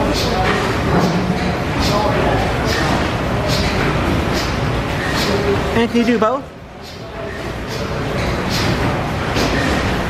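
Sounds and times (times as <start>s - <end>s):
murmur of voices: 0.0s - 9.9s.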